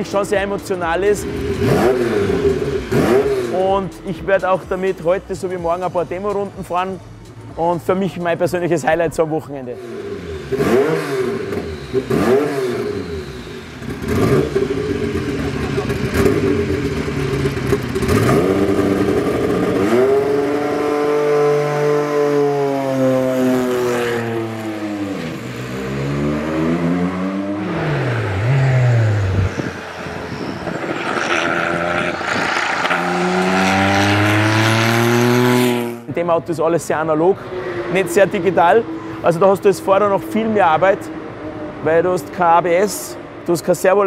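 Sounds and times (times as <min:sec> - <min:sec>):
race car engine revving: 0:00.0 - 0:04.0, 0:09.6 - 0:36.2.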